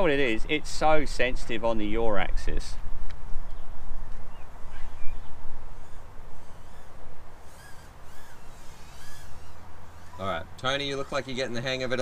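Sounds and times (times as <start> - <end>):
birds chirping and calling: 3.6 - 12.0.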